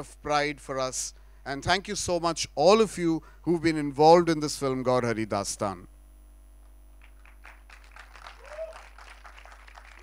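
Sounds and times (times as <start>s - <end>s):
audience applause: 7.0s - 10.0s.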